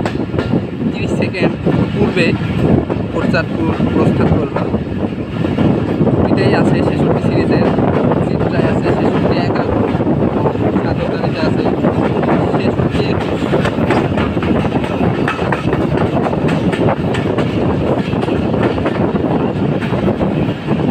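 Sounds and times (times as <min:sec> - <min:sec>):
train wheels rumbling on rail: 0:00.0 - 0:20.9.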